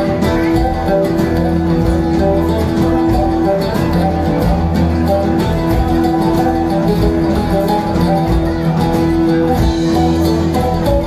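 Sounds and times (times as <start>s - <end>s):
oud plucked notes: 0.0s - 11.0s.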